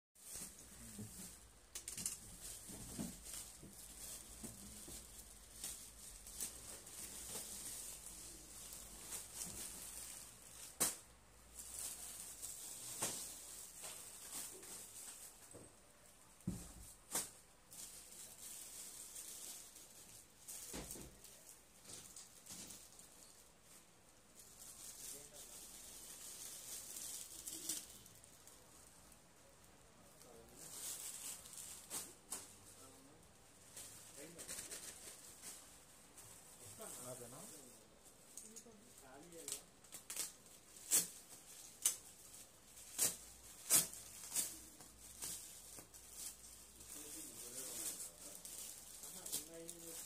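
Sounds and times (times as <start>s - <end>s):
plastic packaging crinkling: 0.2s - 29.2s, 30.0s - 50.0s.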